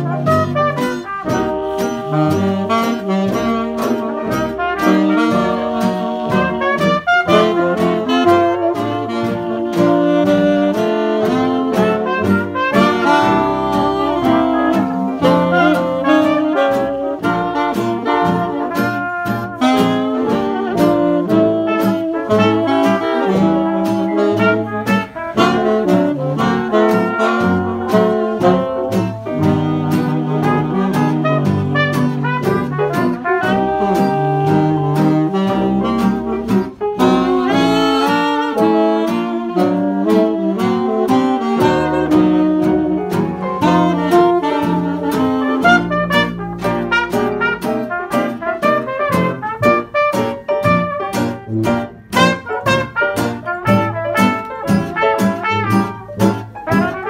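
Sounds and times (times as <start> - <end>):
small jazz band playing: 0.0 - 57.0.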